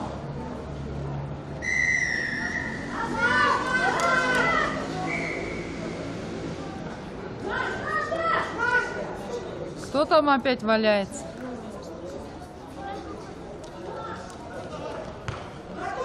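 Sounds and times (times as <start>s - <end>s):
referee's whistle blast: 1.6s - 2.8s
children shouting: 1.7s - 5.1s, 7.4s - 9.0s.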